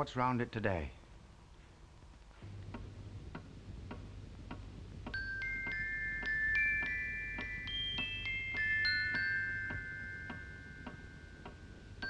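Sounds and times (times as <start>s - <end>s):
low steady hum: 0.0s - 12.0s
clock ticking: 2.6s - 12.0s.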